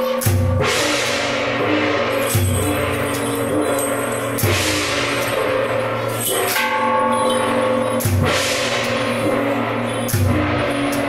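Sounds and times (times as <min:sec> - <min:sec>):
drum gong and cymbals playing: 0:00.0 - 0:11.0
sharp cymbal crashes: 0:00.0 - 0:11.0.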